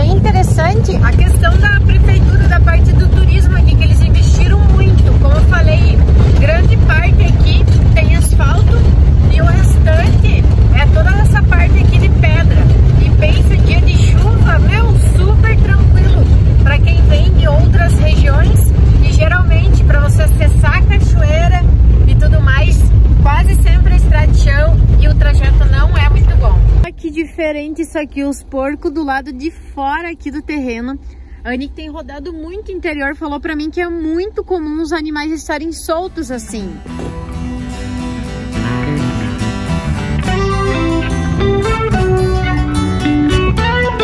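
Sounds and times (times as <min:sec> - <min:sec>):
woman talking: 0:00.0 - 0:36.9
van engine and road rumble: 0:00.0 - 0:44.0.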